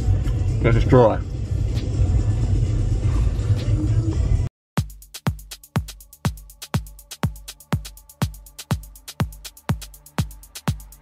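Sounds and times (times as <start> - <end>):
electronic dance music: 4.8 - 11.0.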